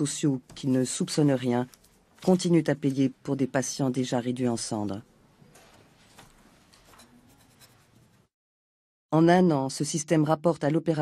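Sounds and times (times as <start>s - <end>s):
pen scratching on paper: 7.0s - 8.3s.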